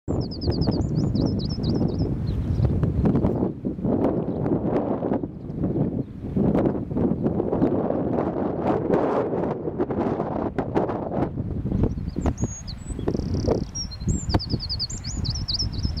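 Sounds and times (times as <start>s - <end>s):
small bird chirping: 0.1s - 3.4s, 11.8s - 16.0s
wind buffeting microphone: 0.1s - 16.0s.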